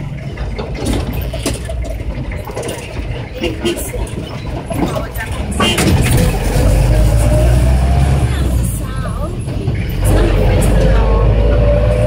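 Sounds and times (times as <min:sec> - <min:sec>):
faint passengers' voices: 0:00.0 - 0:12.0
minibus engine and road noise: 0:00.0 - 0:12.0.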